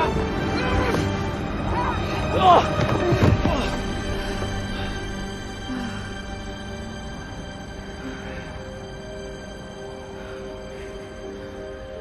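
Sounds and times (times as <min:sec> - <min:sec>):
human cries and yells: 0:00.0 - 0:03.8
dramatic film score: 0:00.0 - 0:12.0.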